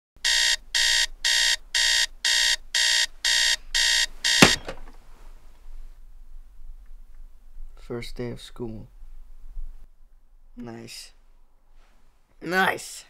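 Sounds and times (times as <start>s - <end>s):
digital alarm clock beeping: 0.2s - 4.7s
sharp knock: 4.4s - 4.9s.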